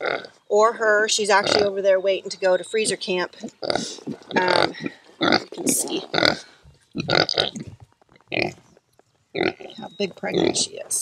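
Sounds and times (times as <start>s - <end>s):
pig grunting: 1.3s - 1.8s, 2.8s - 8.6s, 9.4s - 10.7s.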